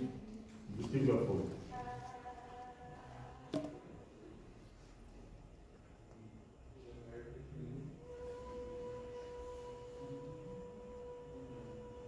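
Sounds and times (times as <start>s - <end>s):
person holding high sustained vowel: 8.0s - 12.0s.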